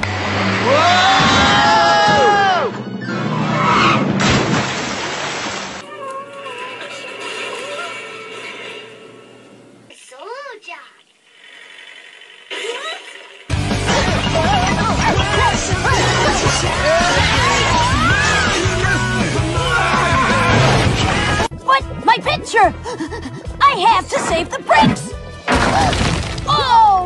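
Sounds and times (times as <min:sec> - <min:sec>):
cartoon background music: 0:13.5 - 0:27.0.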